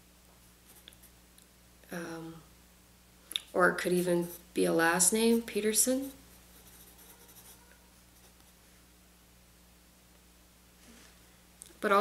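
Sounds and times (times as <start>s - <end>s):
pencil scratching on paper: 4.2s - 8.5s.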